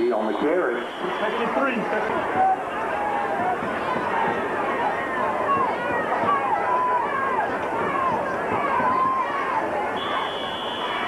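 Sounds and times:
crowd chatter and calls: 0.0s - 11.0s
referee's whistle blast: 10.0s - 11.0s.

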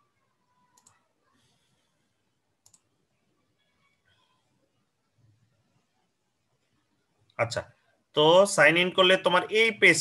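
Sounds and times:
faint room noise: 0.0s - 10.0s
computer mouse click: 0.7s - 1.0s, 2.6s - 2.9s.

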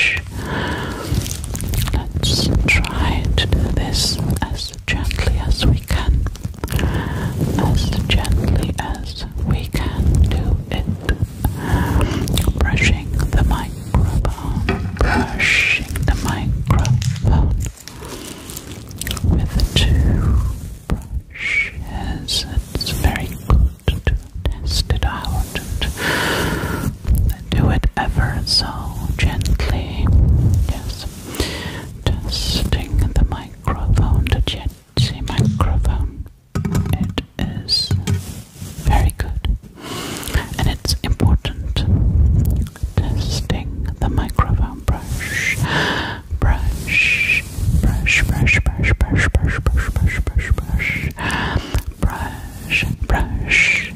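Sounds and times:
low bumps: 0.0s - 17.9s, 35.0s - 39.6s
close breathy whispering: 0.0s - 36.3s, 36.9s - 53.9s
soft mouth clicks: 11.0s - 21.8s, 42.4s - 42.9s, 46.9s - 53.9s.

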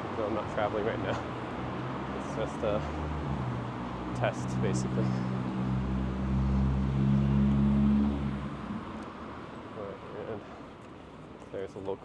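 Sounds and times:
car engine humming: 0.0s - 11.4s
traffic noise: 0.0s - 12.0s.

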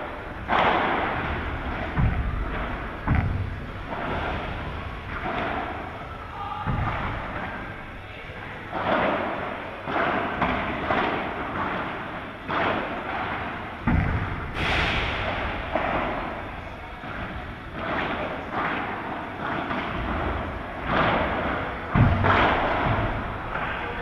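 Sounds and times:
loud bang: 13.8s - 16.5s
padel ball hits echoing: 19.5s - 23.6s.

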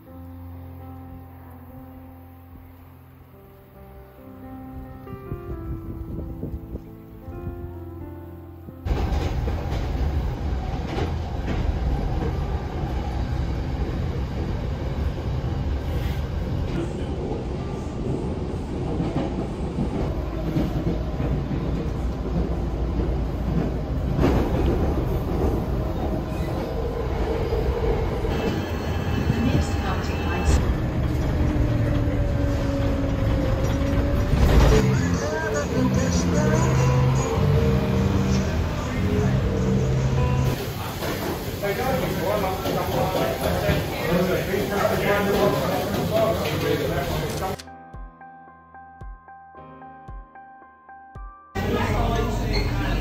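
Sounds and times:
train wheels rumbling on track: 8.9s - 47.6s.

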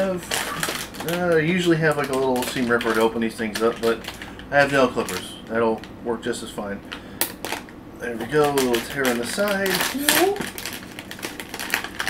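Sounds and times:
foil wrapper crinkling: 0.0s - 5.9s, 6.9s - 12.0s.

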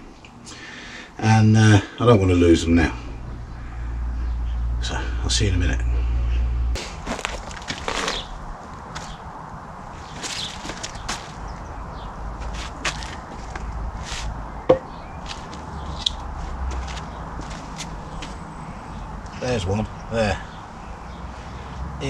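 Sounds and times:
low hum: 2.4s - 9.9s
hands rustling in soil: 6.8s - 9.2s, 10.0s - 11.5s.

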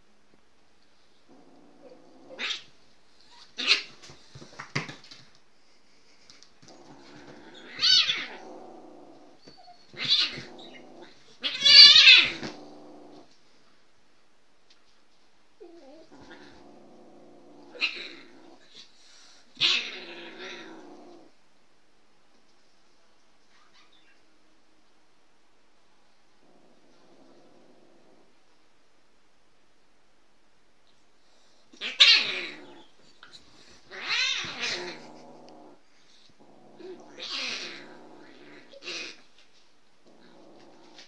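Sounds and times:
cat growling: 1.3s - 5.0s, 6.4s - 13.4s, 15.6s - 21.4s, 26.4s - 28.4s, 31.3s - 39.4s, 40.0s - 41.0s
cat hissing: 6.7s - 13.2s, 31.4s - 39.3s
cat yowling: 7.6s - 8.5s, 11.4s - 12.6s.

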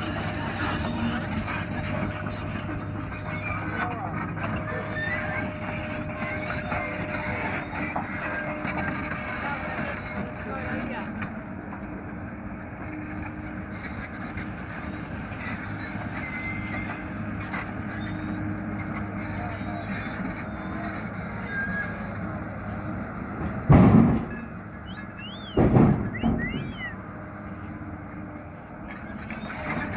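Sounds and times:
excavator diesel engine running: 0.0s - 29.9s
wood thudding into metal truck: 23.4s - 24.4s, 25.6s - 26.7s.

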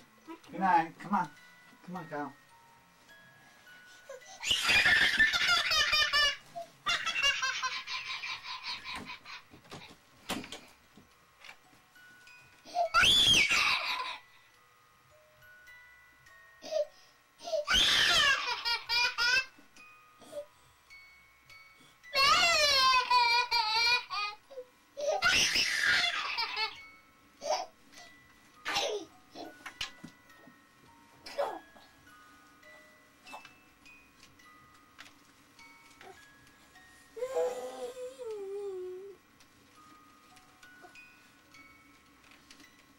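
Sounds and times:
child laughing: 4.4s - 9.5s, 12.9s - 14.2s
child squealing: 12.9s - 14.0s, 17.6s - 18.5s, 25.1s - 26.5s.

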